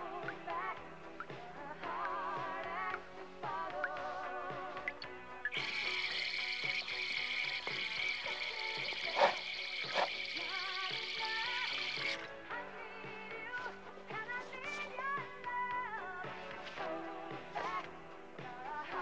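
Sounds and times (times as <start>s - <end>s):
pop song with singing: 0.0s - 19.0s
tap water running into sink: 5.5s - 12.3s.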